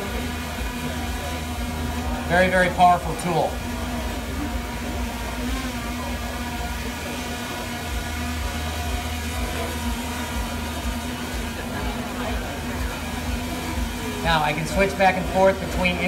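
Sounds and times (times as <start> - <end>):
drone propellers humming: 0.0 - 16.0.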